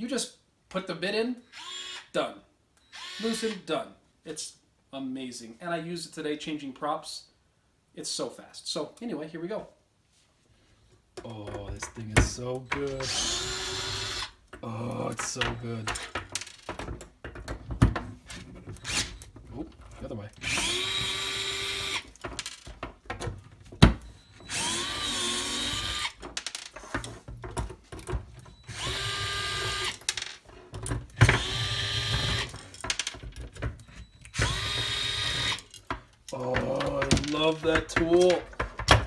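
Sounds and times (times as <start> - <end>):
electric screwdriver motor whirring: 1.5 - 2.0, 2.9 - 3.6, 13.0 - 14.3, 18.8 - 19.2, 20.4 - 22.1, 24.5 - 26.2, 28.7 - 30.0, 31.2 - 32.6, 34.3 - 35.8
tool handling clicks and knocks: 14.4 - 20.8, 22.0 - 24.5, 26.2 - 28.6, 32.3 - 34.4, 35.6 - 39.0.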